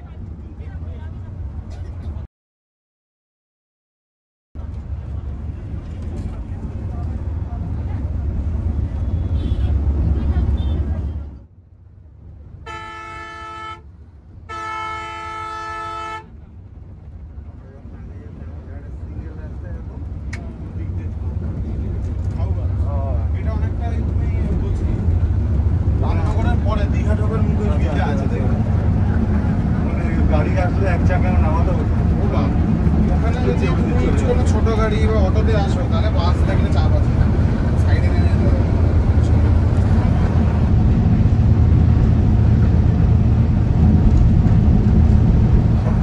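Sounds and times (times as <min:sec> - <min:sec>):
engine and road rumble: 0:00.0 - 0:02.3, 0:04.6 - 0:46.0
horn blasts: 0:09.0 - 0:09.9, 0:12.6 - 0:13.9, 0:14.5 - 0:16.3.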